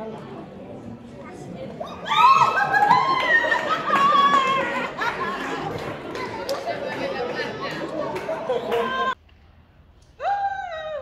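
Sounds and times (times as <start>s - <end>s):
people chattering excitedly: 0.0s - 9.2s.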